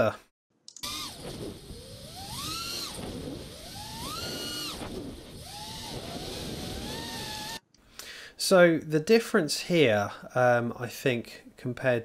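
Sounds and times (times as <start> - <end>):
drone motors whining: 0.8 - 7.6.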